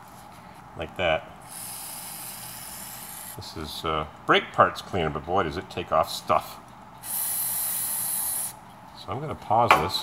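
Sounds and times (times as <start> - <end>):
aerosol can spraying hiss: 1.5 - 3.4, 7.0 - 8.6.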